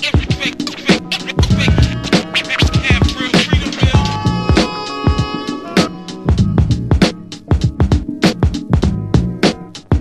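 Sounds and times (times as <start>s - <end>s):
turntable scratching: 0.0s - 6.0s
hip hop drum beat and bass: 0.0s - 10.0s.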